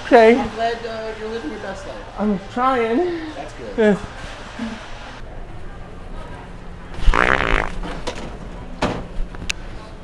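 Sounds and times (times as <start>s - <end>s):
rippling fart noise: 7.0s - 7.9s.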